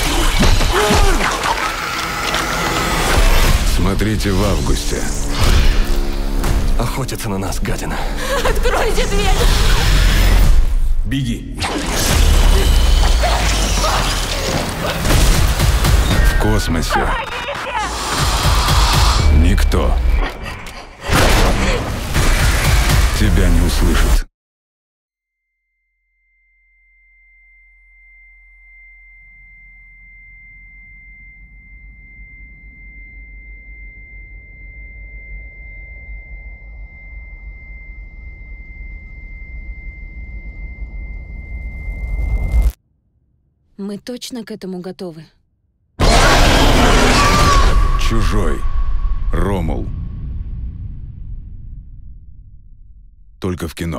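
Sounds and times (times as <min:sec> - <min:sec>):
steady high-pitched tone: 0:26.4 - 0:42.8
heavy low rumble: 0:47.8 - 0:53.6.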